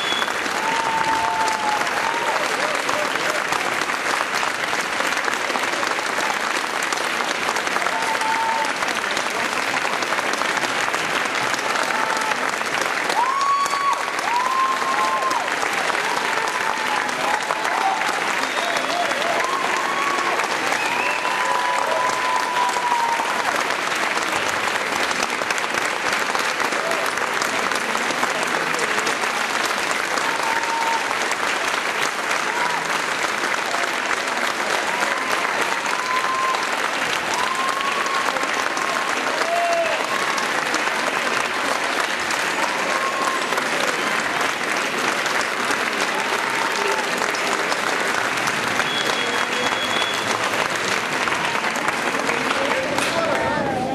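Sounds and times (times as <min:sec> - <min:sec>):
audience applauding: 0:00.0 - 0:53.9.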